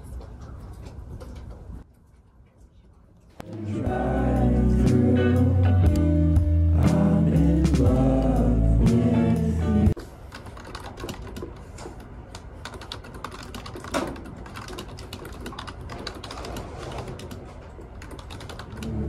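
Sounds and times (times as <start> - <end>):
background music: 3.5 - 10.0
keyboard typing: 10.3 - 11.6, 12.3 - 19.0.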